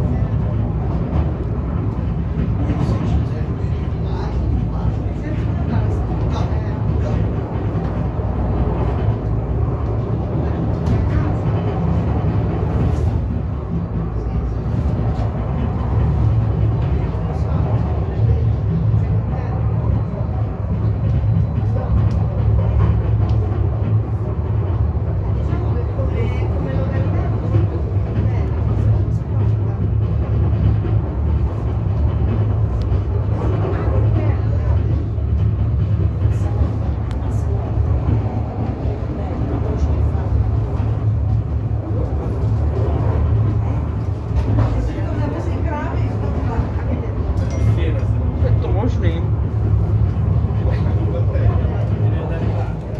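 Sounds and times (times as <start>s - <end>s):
funicular car rumbling: 0.0s - 52.9s
murmured passenger voices: 0.0s - 52.9s.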